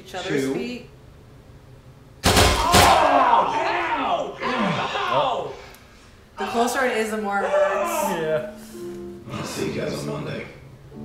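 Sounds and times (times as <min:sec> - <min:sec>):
people screaming: 0:02.5 - 0:05.7, 0:06.4 - 0:08.5.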